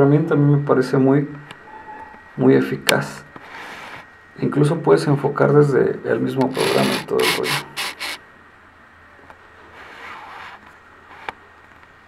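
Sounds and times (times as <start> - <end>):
person speaking: 6.4 - 8.2
short rubbing noises: 6.5 - 8.2.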